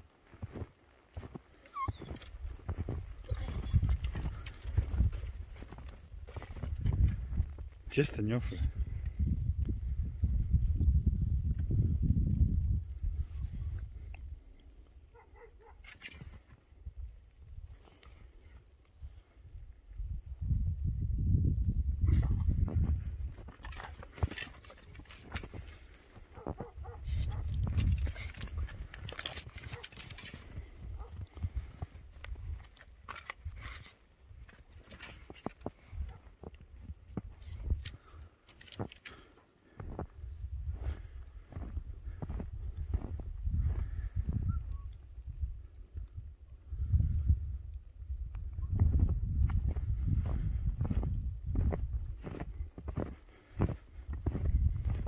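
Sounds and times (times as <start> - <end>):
footsteps crunching through snow: 0.0 - 7.7, 39.8 - 44.0, 49.0 - 55.0
dogs sniffing and snuffling: 0.6 - 7.2, 15.1 - 16.6, 22.0 - 39.8
dog whining: 1.6 - 2.4, 3.2 - 4.2.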